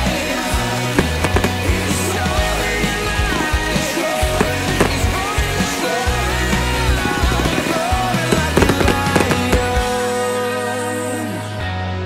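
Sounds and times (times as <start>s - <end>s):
loud instrumental music: 0.0s - 12.0s
fireworks bangs: 0.9s - 10.2s.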